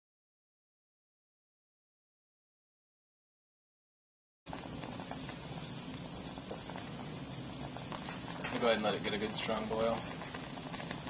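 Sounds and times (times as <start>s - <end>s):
gas burner flame hissing: 4.5s - 11.0s.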